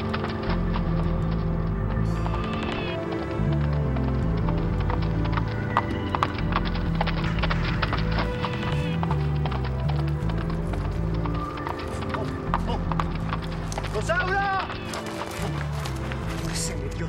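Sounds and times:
background music with low notes: 0.0 - 17.0
horse hoofbeats: 0.0 - 17.0.

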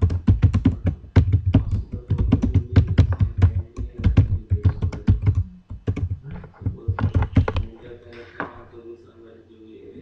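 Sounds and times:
typing on computer keyboard: 0.0 - 7.8.

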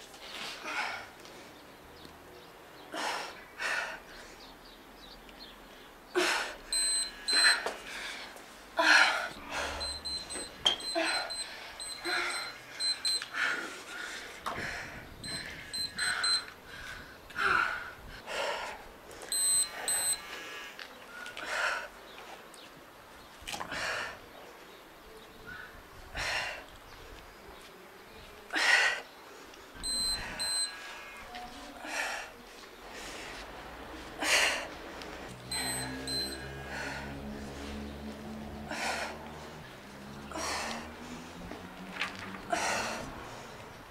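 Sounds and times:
woman breathing hard: 6.2 - 21.9, 34.2 - 37.7, 38.6 - 39.6, 40.3 - 41.4, 42.5 - 43.7
timer high beeps: 6.7 - 7.6, 9.5 - 13.4, 15.2 - 16.5, 19.3 - 20.2, 29.8 - 30.8, 35.5 - 36.6.

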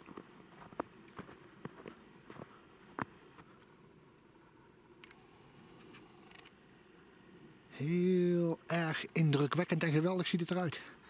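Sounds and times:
footsteps on snow: 0.0 - 3.8.

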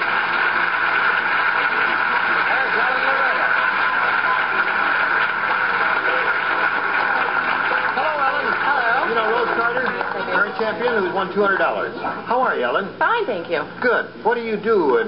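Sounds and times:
audience applauding: 0.0 - 11.7.

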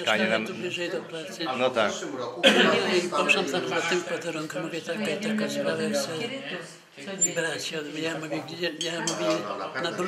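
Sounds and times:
dishes and cutlery clinking: 8.8 - 9.5.

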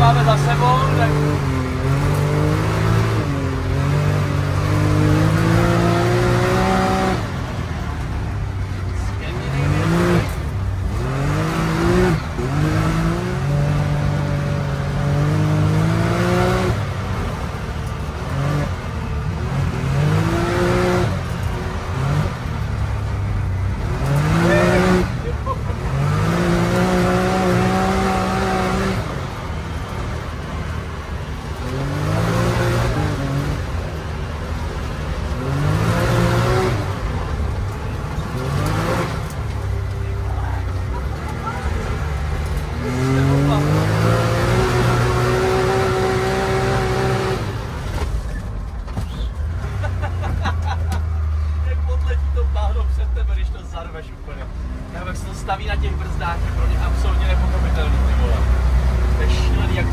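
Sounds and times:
engine revving under full throttle: 0.0 - 8.4, 9.1 - 48.2, 54.5 - 59.9
drivetrain and road rumble: 0.0 - 59.9.

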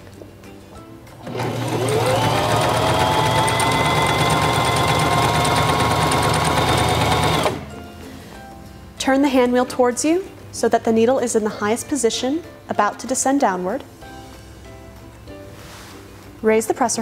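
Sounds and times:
sewing machine stitching: 1.2 - 7.7.

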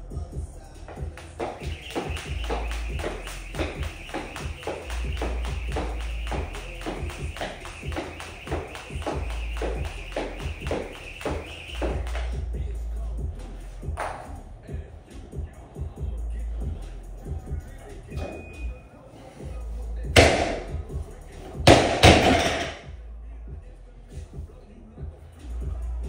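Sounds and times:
music with vocals: 0.0 - 26.0
jump rope slapping a rubber mat: 0.9 - 12.4, 21.7 - 22.7.

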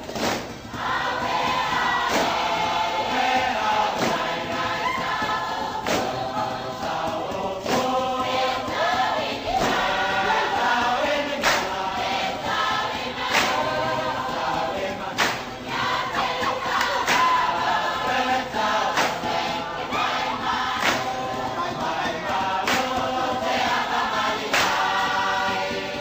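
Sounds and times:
group singing in harmony: 0.0 - 26.0
sharp percussive hits: 0.0 - 26.0.

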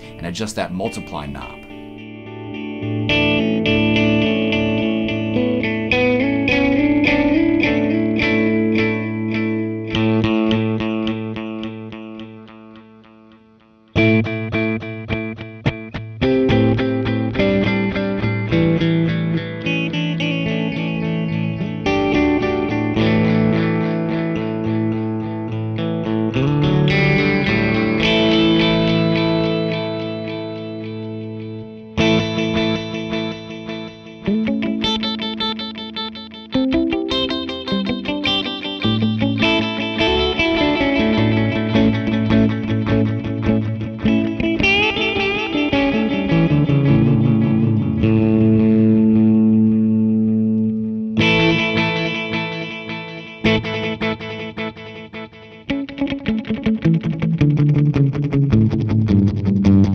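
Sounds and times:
electric guitar with delay repeats: 0.0 - 59.9.

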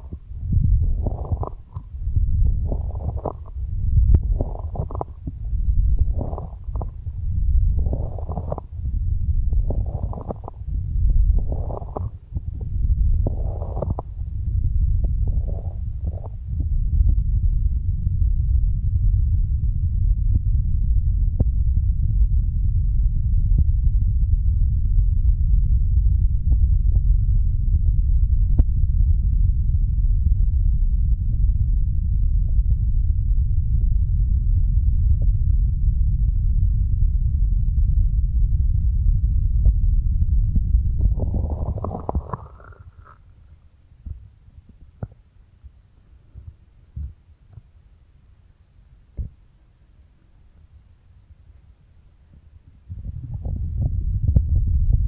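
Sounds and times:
muffled low rumble: 0.0 - 55.0
hands rubbing over microphone: 0.8 - 1.9, 2.5 - 3.6, 4.2 - 5.4, 6.0 - 7.1, 7.7 - 8.8, 9.5 - 10.7, 11.3 - 14.3, 15.1 - 16.4, 41.1 - 43.2.

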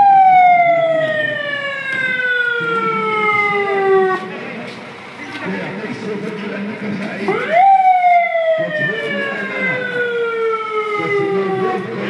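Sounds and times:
vehicle siren wailing: 0.0 - 4.6, 7.3 - 12.0
faint voices: 0.0 - 12.0.

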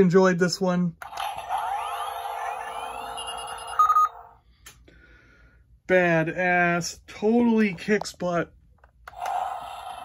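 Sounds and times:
toy whirring hum with rising sweeps: 1.0 - 4.3, 9.1 - 10.0.

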